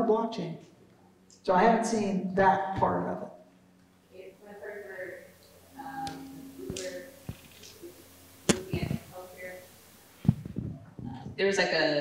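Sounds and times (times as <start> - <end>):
faint steady hum: 0.0 - 12.0
sharp click: 8.5 - 8.9.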